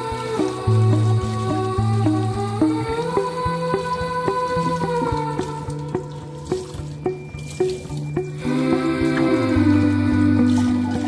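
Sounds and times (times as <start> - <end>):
song with steady beat: 0.0 - 11.0
tap water running: 0.0 - 11.0.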